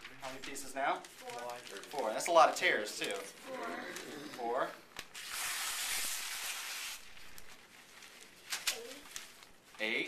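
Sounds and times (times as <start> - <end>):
newspaper tearing: 0.0 - 3.2, 5.0 - 9.6
person speaking: 0.0 - 4.9.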